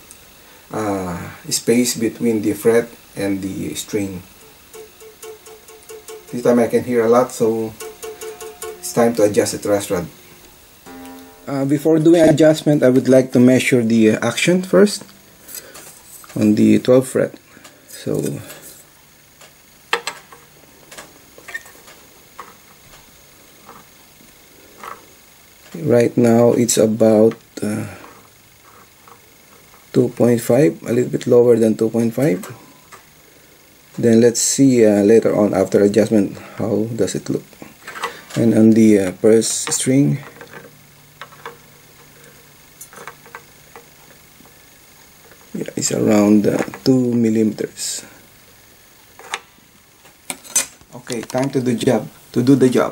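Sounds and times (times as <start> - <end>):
metal ruler clicking on guitar strings: 7.8 - 9.1.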